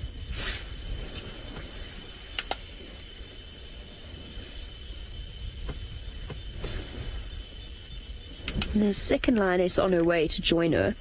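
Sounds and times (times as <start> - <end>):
faint high whine: 0.0 - 11.0
low rumble and hiss: 0.0 - 11.0
faint clicks: 0.9 - 10.2.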